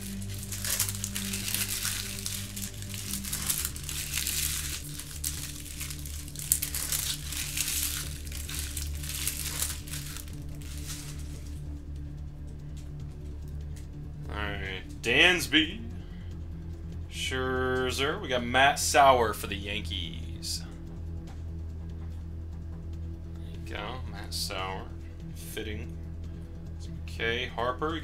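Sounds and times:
card wrappers tearing and crinkling: 0.0 - 11.6
quiet background music: 0.0 - 28.0.

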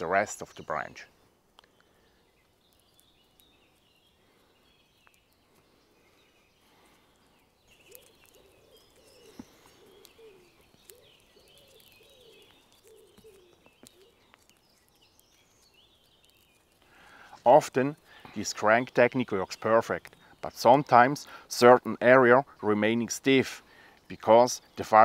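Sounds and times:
faint birdsong: 0.0 - 25.0
twig fibres cracking: 1.5 - 20.2.

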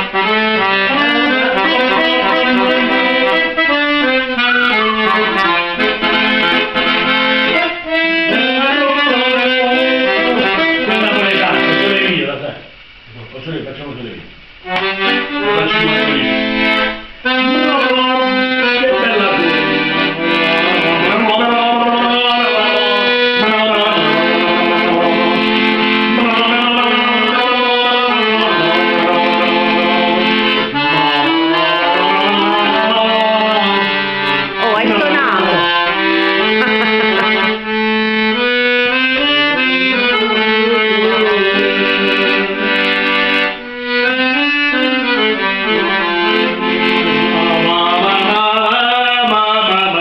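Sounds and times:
piano accordion playing: 0.0 - 12.5, 14.6 - 50.0
man singing: 8.0 - 12.4, 15.3 - 16.5, 17.3 - 37.6, 47.0 - 50.0.

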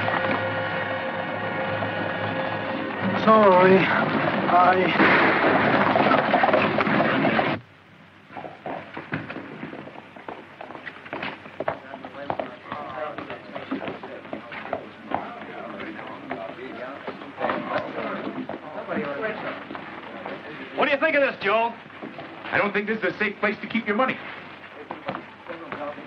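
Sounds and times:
faint background voices: 11.6 - 21.8.

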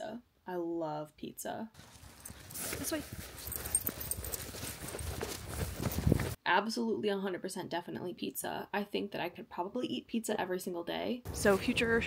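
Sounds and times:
person's footsteps: 1.8 - 6.4.

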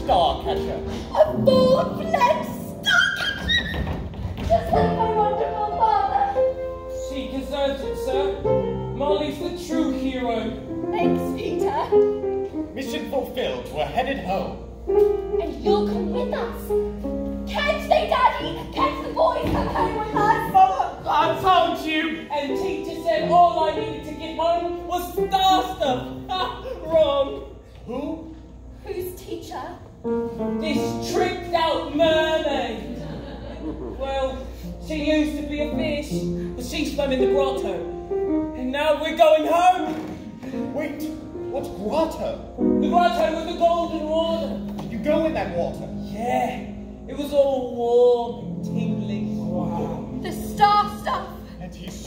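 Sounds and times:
piano accompaniment: 0.0 - 52.0.

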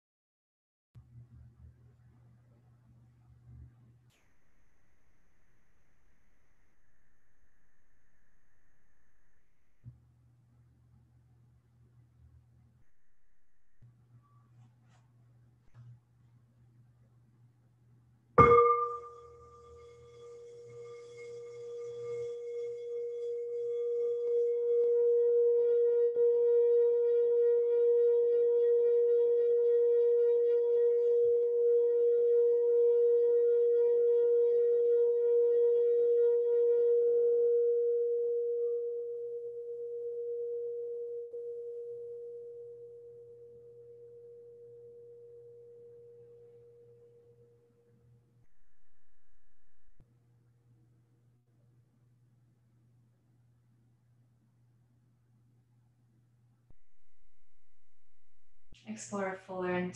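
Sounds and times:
singing bowl ringing: 18.4 - 27.4, 36.9 - 47.8.

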